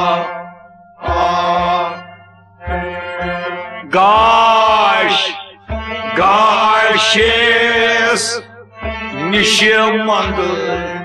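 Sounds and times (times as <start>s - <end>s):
bowed and plucked strings: 0.0s - 11.0s
harmonium: 0.0s - 11.0s.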